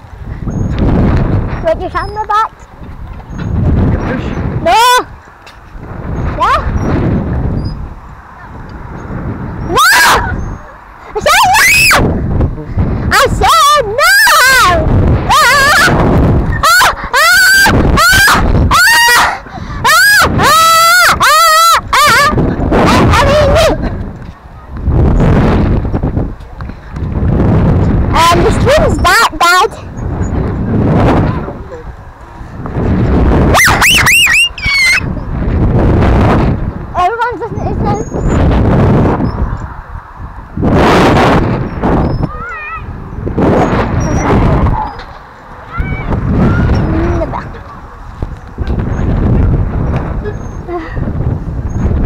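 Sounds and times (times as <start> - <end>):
wind rumble on microphone: 0.0 - 52.0
child shrieking and squealing: 9.7 - 10.6, 11.2 - 12.0, 13.5 - 22.4, 33.6 - 35.2, 42.2 - 42.9, 45.7 - 47.3
child calling out: 42.3 - 42.9, 45.7 - 47.5.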